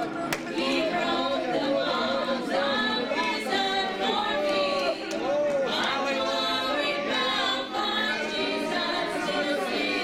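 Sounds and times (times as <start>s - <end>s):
congregation singing: 0.0s - 10.0s.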